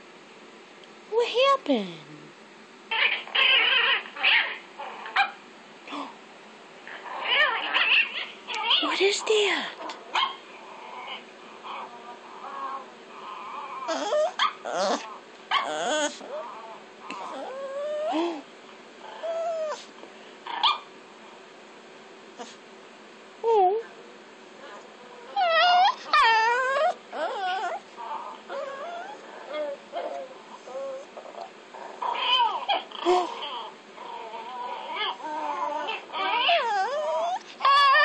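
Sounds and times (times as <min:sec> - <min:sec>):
faint high dog cries: 0:02.9 - 0:04.6, 0:13.8 - 0:16.5, 0:17.1 - 0:18.4, 0:19.2 - 0:19.9, 0:25.3 - 0:27.8, 0:32.1 - 0:33.7, 0:34.4 - 0:38.0
small dog yipping: 0:02.9 - 0:05.4, 0:07.2 - 0:08.9, 0:13.8 - 0:16.4, 0:19.2 - 0:19.9, 0:20.6 - 0:20.9, 0:25.3 - 0:27.8, 0:34.9 - 0:38.0
dog whining: 0:02.9 - 0:06.2, 0:06.9 - 0:19.9, 0:24.6 - 0:38.0.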